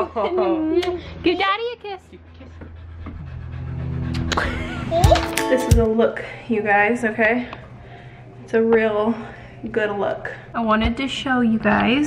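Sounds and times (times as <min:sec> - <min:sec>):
dog panting: 0:02.1 - 0:04.7
background music of held notes: 0:03.8 - 0:06.4.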